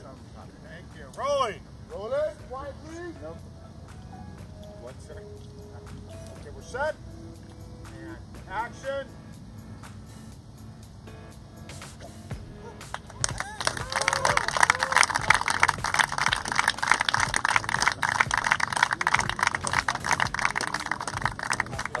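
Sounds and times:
crowd clapping and cheering: 12.8 - 22.0
whoops: 13.1 - 16.4.

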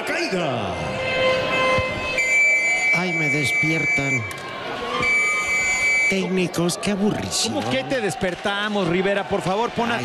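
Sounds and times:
faint crowd noise: 0.0 - 10.0
held horn-like tones: 0.7 - 4.3.

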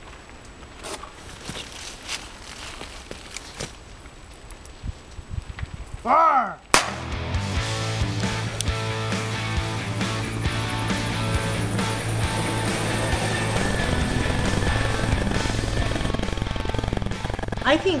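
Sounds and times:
brush rustling underfoot: 0.0 - 5.4
flare whistle and crack: 6.7 - 7.2
music: 6.8 - 18.0.

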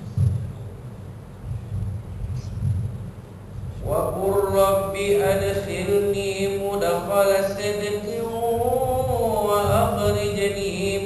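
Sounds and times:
person chanting a recitation: 3.6 - 11.0.

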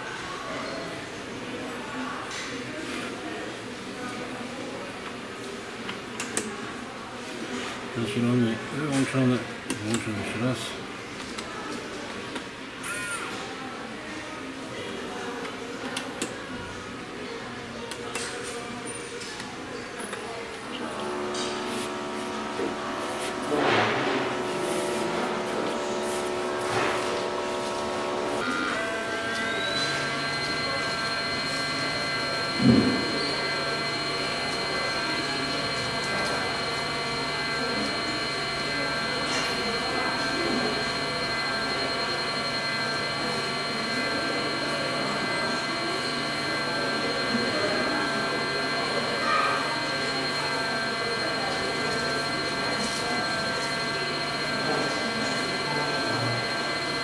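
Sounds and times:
machine whine: 0.0 - 1.5, 20.8 - 57.0.

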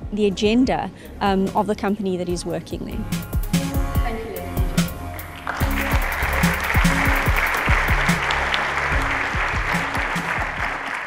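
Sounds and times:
background music with steady beat: 0.0 - 11.0
audience applauding: 5.2 - 11.0.

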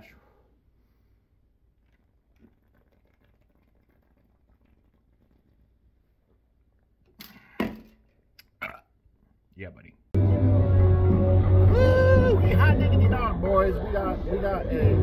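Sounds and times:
faint swallowing: 1.8 - 7.6, 8.4 - 9.0.

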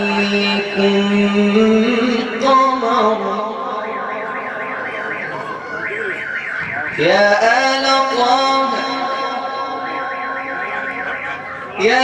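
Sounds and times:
high warbling alarm tone: 0.0 - 12.0.

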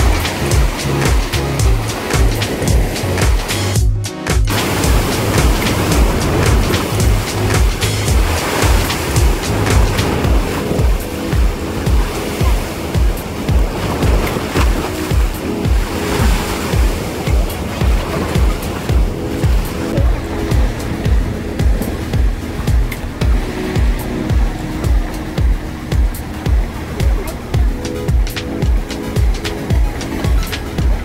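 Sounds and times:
surf breaking on rocky shore: 0.0 - 3.8, 4.4 - 31.0
background music with steady beat: 0.0 - 31.0.

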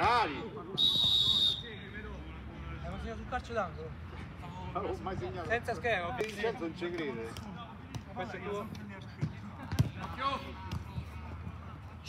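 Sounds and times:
players calling: 0.0 - 2.2
football being kicked: 9.2 - 11.1.

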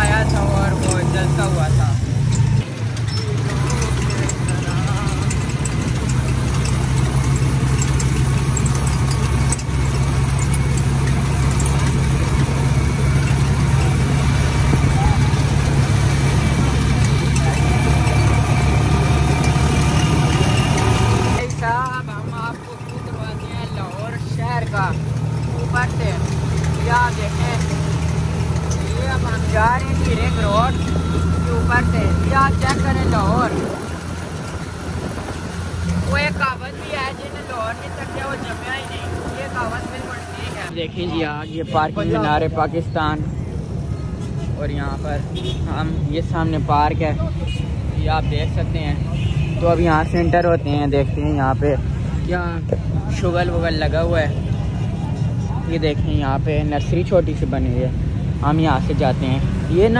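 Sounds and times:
motorcycle rickshaw engine running: 0.0 - 59.9
street noise: 0.0 - 59.9.

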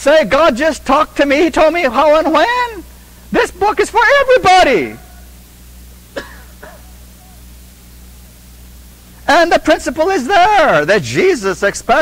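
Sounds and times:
steady low hum: 0.0 - 12.0
person clearing throat: 6.1 - 7.4.

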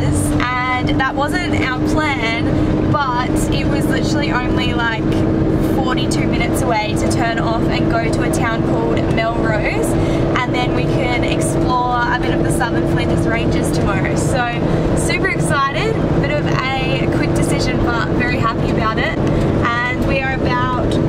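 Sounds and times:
bus engine and road drone: 0.0 - 21.0
woman talking: 0.0 - 21.0.

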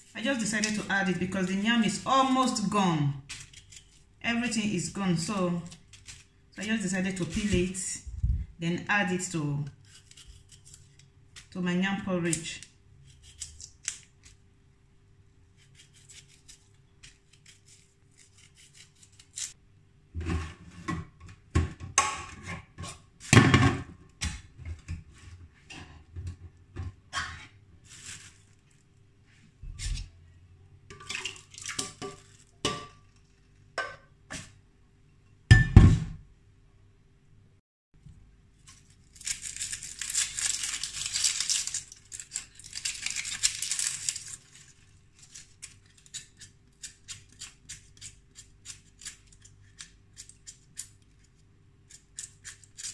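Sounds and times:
onion skin peeling rustle: 0.0 - 2.6, 3.2 - 4.2, 5.2 - 7.6, 9.8 - 11.6, 12.2 - 14.5, 15.5 - 19.6, 27.8 - 28.9, 38.6 - 52.9.

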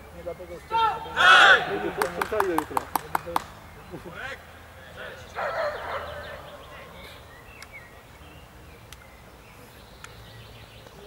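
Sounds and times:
distant voices murmuring: 0.0 - 11.0
sharp handclaps: 1.8 - 3.6.

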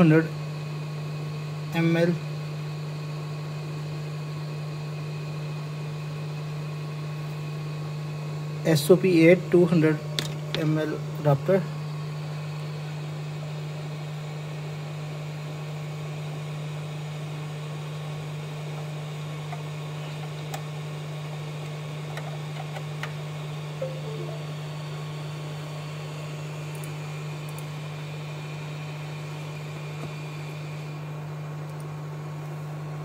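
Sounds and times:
steady low hum: 23.6 - 25.4.

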